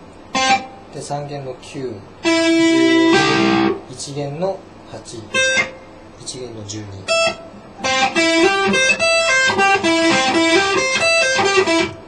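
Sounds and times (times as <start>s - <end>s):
electric guitar single notes: 0.3s - 0.9s, 2.2s - 3.8s, 5.3s - 6.0s, 7.0s - 12.0s.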